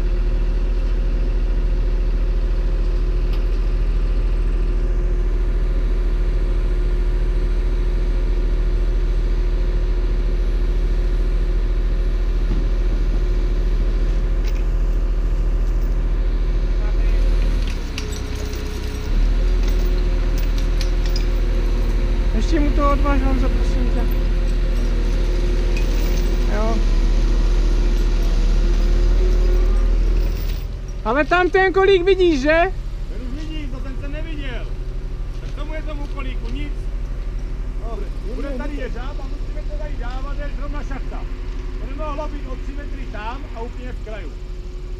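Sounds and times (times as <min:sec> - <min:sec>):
diesel engine running: 0:00.0 - 0:44.9
sharp metallic clinks: 0:17.0 - 0:22.5, 0:23.5 - 0:26.8, 0:27.8 - 0:31.5.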